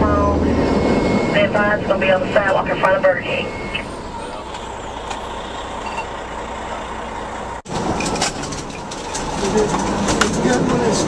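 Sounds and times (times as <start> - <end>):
truck engine and road noise: 0.0 - 11.0.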